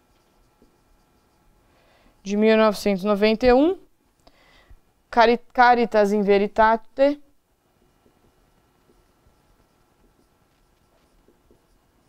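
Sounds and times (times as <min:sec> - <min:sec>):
marker writing on whiteboard: 0:00.0 - 0:01.5, 0:07.7 - 0:12.0.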